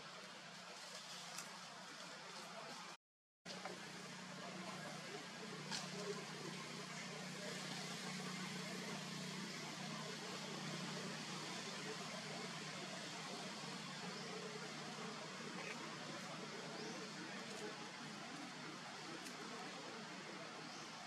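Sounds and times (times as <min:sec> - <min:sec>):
constant low hum: 0:03.5 - 0:21.0
outdoor background hiss: 0:03.5 - 0:21.0.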